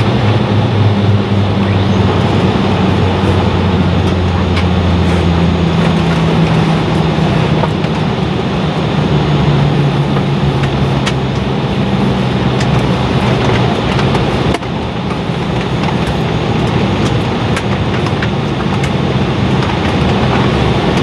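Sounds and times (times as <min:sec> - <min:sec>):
jet engines droning at idle: 0:00.0 - 0:21.0.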